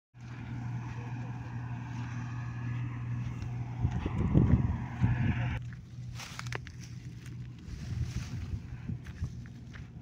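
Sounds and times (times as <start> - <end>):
combine harvester engine droning: 0.2 - 10.0.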